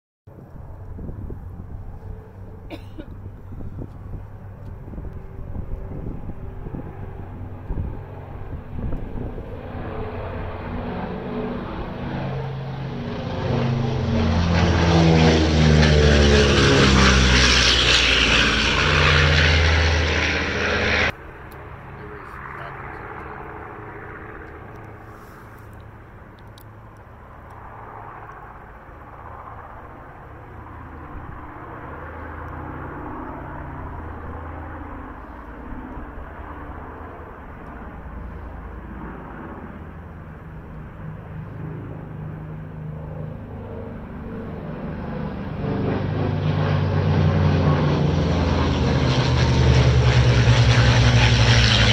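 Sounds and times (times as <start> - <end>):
drone of propeller aircraft: 0.3 - 51.9
propeller plane passing: 0.3 - 51.9.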